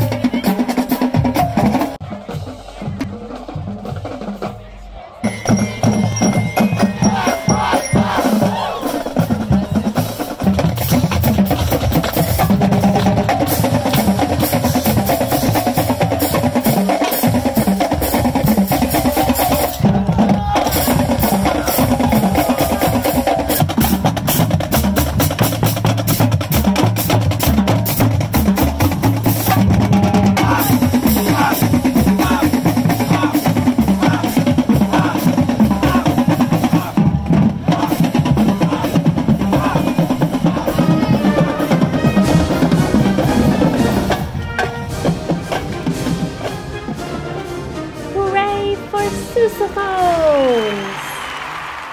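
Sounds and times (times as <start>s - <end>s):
drumline beating: 0.0s - 51.9s
marching band playing: 0.0s - 51.9s.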